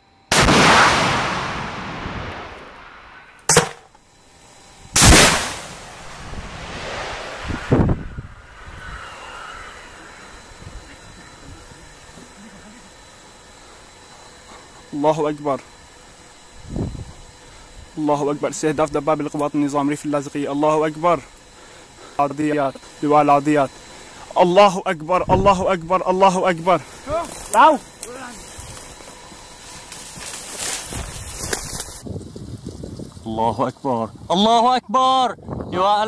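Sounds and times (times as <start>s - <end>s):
missile launch blast: 0.3s - 3.4s, 5.0s - 10.2s
rushing hiss: 5.0s - 12.8s.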